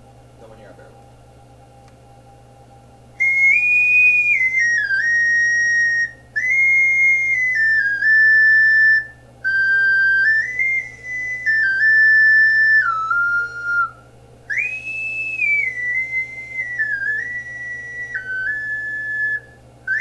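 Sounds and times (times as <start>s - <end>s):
ocarina playing a tune: 3.2s - 20.0s.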